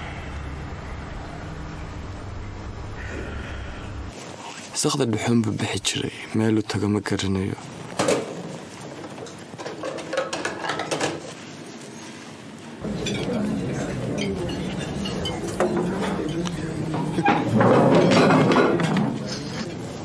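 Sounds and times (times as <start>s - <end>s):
dishes and cutlery clinking: 9.6s - 11.3s, 12.8s - 20.0s
indistinct chatter of people: 12.8s - 20.0s.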